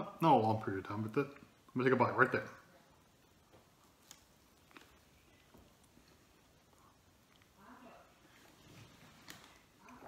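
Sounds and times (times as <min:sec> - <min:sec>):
person chewing food: 0:03.7 - 0:07.6.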